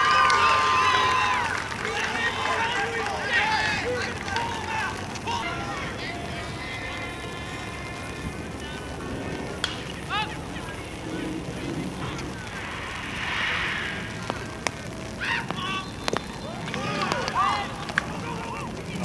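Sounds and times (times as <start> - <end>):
players shouting: 0.0 - 19.0
bat cracking on ball: 9.6 - 10.0.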